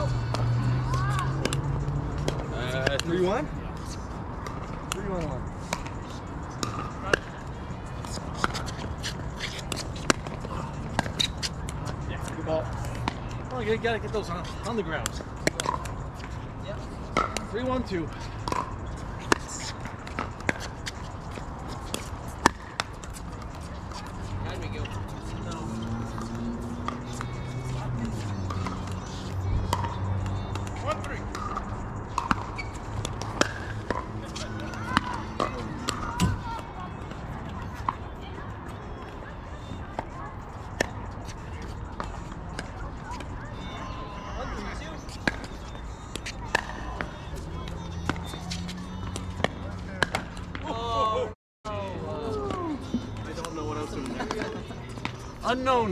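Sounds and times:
ball bouncing on hard court: 0:18.4 - 0:19.4.

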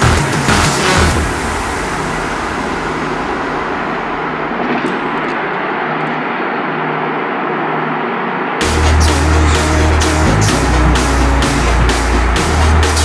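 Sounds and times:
low hum: 0:00.0 - 0:13.0
car tyre and engine noise: 0:01.2 - 0:08.6.

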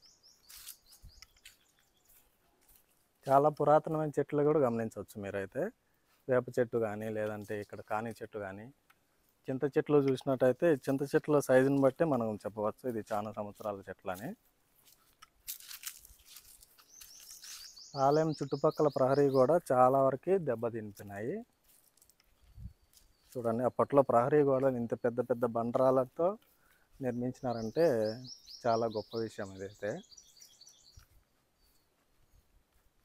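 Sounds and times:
small bird chirping: 0:00.0 - 0:02.9, 0:16.0 - 0:19.9, 0:22.0 - 0:32.4.

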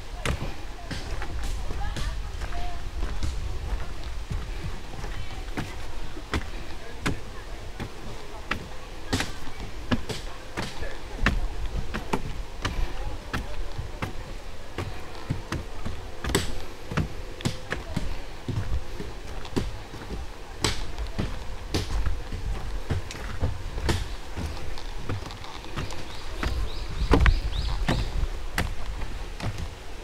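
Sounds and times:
footsteps on wooden stairs: 0:00.0 - 0:30.0.

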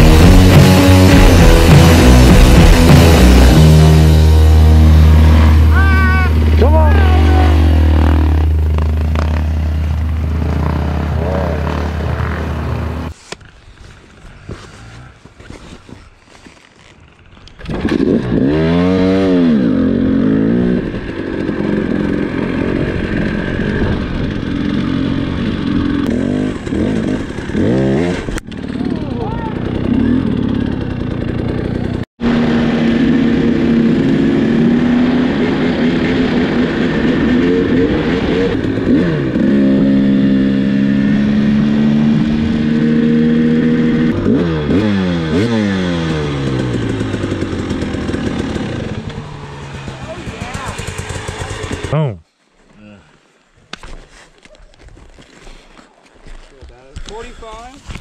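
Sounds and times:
dirt bike engine revving: 0:00.0 - 0:13.2, 0:17.6 - 0:52.0.

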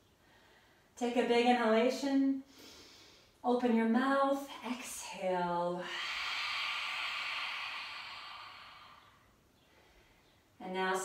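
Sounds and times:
woman exhaling breathy sigh: 0:05.8 - 0:09.3.

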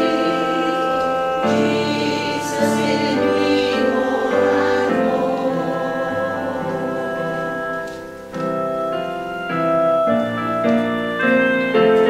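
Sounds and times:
women's choir singing: 0:00.0 - 0:08.6.

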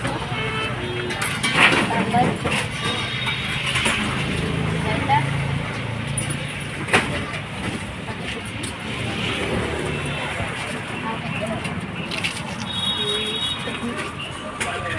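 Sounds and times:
traffic noise: 0:00.0 - 0:14.9.

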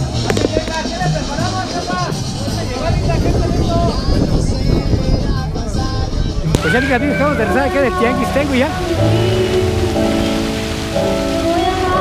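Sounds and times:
music with long held chords: 0:00.0 - 0:12.0
fountain spray splashing on pavement: 0:06.6 - 0:12.0.

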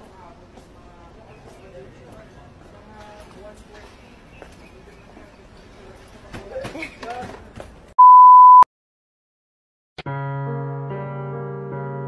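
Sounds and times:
street noise: 0:00.0 - 0:08.0
electronic beep: 0:08.0 - 0:08.7.

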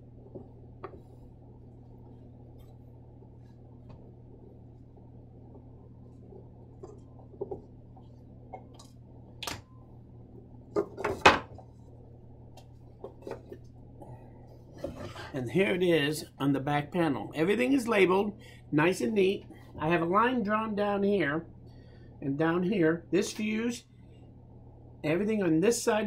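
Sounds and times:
faint low hum: 0:00.0 - 0:26.0.

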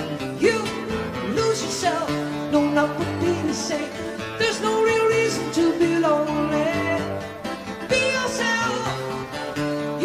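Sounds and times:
live rock band instrumental: 0:00.0 - 0:10.0.

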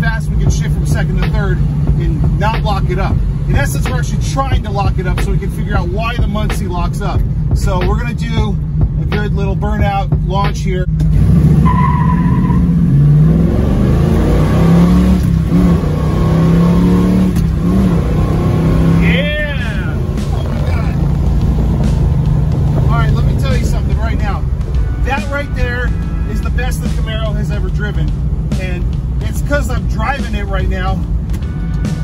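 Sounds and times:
car engine revving hard: 0:11.0 - 0:25.5.

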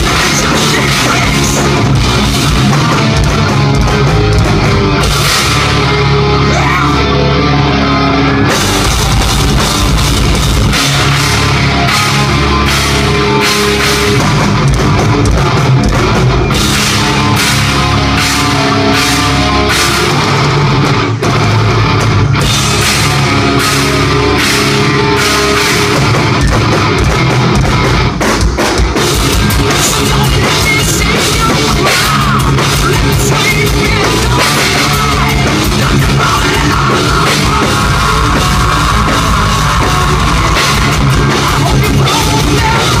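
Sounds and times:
thrash metal band playing: 0:00.0 - 0:43.0.

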